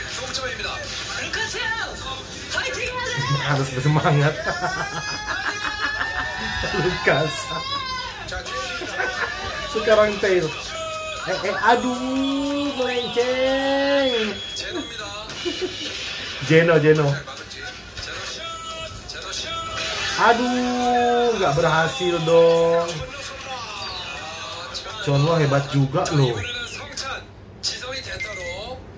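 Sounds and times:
man speaking: 3.2 - 5.0, 6.5 - 14.8, 20.1 - 23.1, 24.9 - 26.6
man shouting yeah: 4.8 - 13.8.

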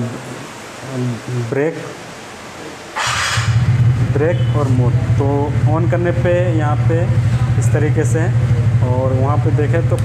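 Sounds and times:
electric starter whirr: 3.0 - 4.1
scooter engine idling: 4.9 - 10.0.

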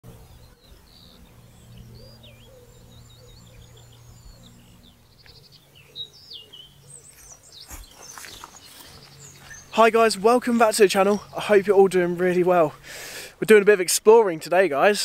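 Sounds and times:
songbirds singing and chirping: 0.0 - 15.0
steady low hum: 0.1 - 13.4.

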